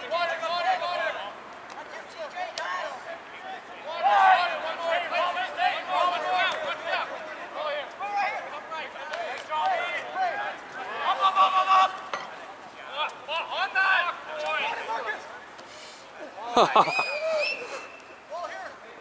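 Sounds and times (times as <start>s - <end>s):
players shouting: 0.0s - 15.6s.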